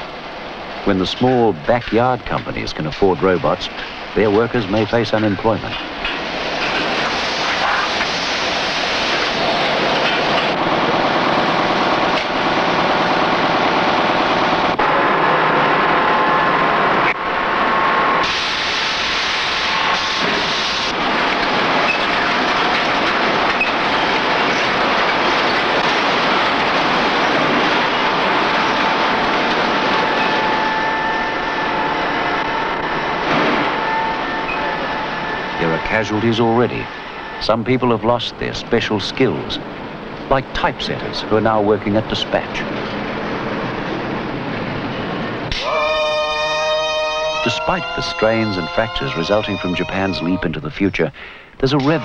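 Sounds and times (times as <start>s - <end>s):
loud mechanical machinery noise: 0.0s - 45.8s.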